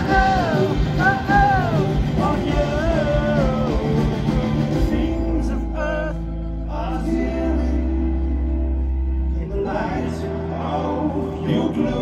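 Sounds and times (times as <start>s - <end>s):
person singing: 0.0s - 12.0s.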